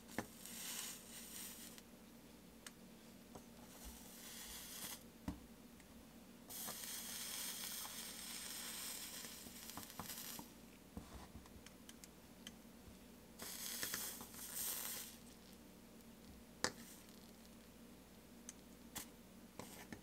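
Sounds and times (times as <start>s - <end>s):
flux sizzling under soldering iron: 0.0s - 1.9s, 3.6s - 5.1s, 6.5s - 10.6s, 13.4s - 15.6s, 16.2s - 17.7s.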